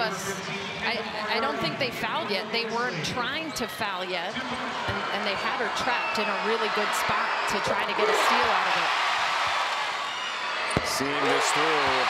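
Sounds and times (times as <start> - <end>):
arena crowd noise: 0.0 - 12.0
basketball hitting hardwood court: 10.7 - 11.0.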